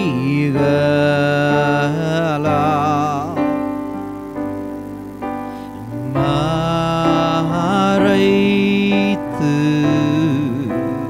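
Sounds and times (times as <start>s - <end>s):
man singing a held note: 0.0s - 4.0s, 5.6s - 11.0s
electronic keyboard chords: 0.0s - 11.0s.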